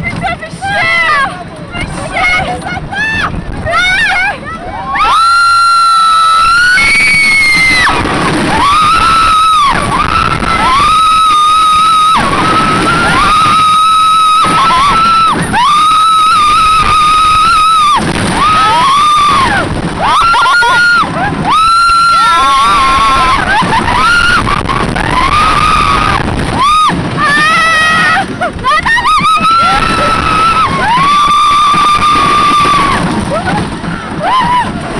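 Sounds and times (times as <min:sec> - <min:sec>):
coaster train rumbling on track: 0:00.0 - 0:34.9
riders screaming: 0:04.8 - 0:34.9.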